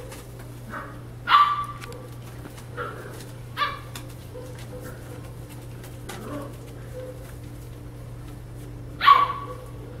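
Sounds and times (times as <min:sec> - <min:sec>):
paws rustling on newspaper: 0:00.0 - 0:00.9, 0:01.5 - 0:10.0
steady low hum: 0:00.0 - 0:10.0
puppy yelp: 0:00.7 - 0:02.1, 0:03.6 - 0:05.0, 0:09.0 - 0:10.0.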